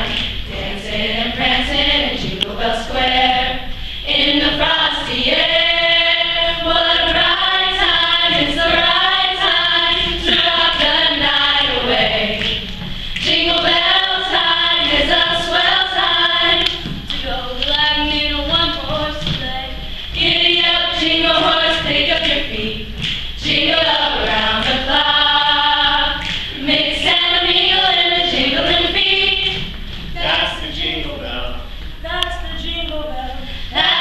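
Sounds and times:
vocal group singing in harmony: 0:00.0 - 0:34.0.

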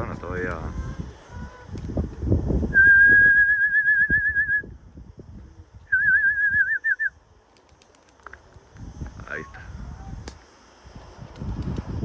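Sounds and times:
person whistling: 0:02.7 - 0:04.7, 0:05.9 - 0:07.1.

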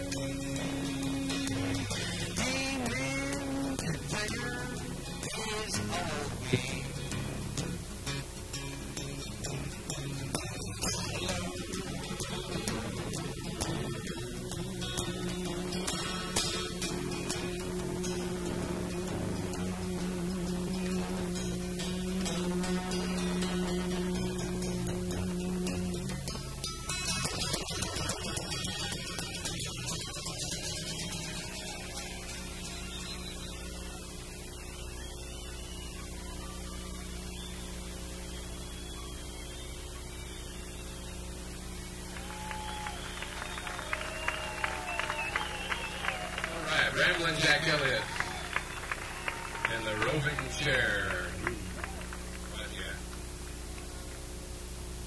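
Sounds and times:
acoustic guitar chords: 0:00.0 - 0:55.0
electrical hum: 0:00.0 - 0:55.0.

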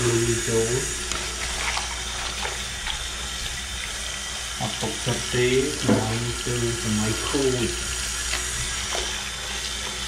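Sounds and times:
faucet running into basin: 0:00.0 - 0:10.0.

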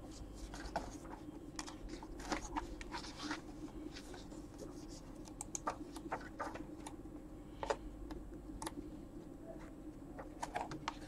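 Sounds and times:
keyboard and mouse clicks: 0:05.2 - 0:06.1.

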